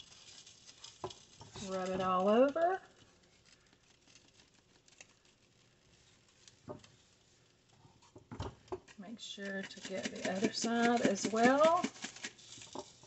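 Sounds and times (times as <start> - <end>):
spice pattering onto meat: 0.0 - 13.0
hands rubbing meat: 9.4 - 13.0.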